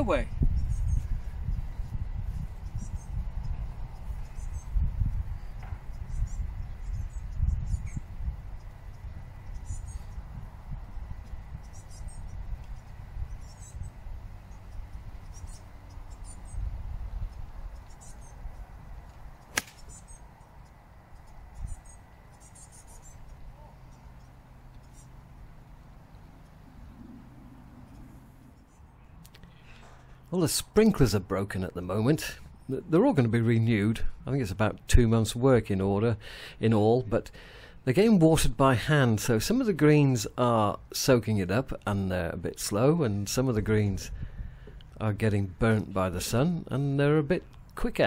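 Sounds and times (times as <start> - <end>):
low rumble: 0.0 - 29.6
faint high chirping: 2.6 - 18.7, 19.8 - 30.2
golf club striking ball: 19.4 - 20.2.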